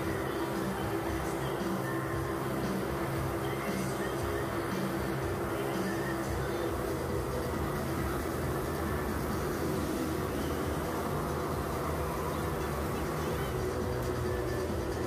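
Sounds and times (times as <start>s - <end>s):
motorcycle engines droning: 0.0s - 15.0s.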